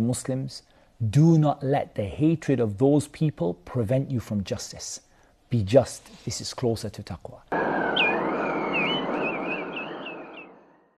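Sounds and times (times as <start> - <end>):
warbling chirp-like high tones: 7.6 - 10.9.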